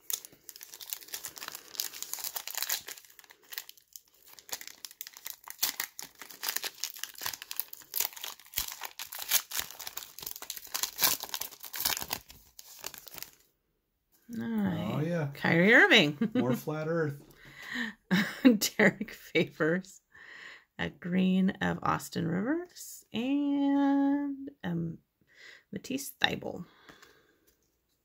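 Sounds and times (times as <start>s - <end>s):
foil wrapper crinkling and tearing: 0.0s - 13.5s.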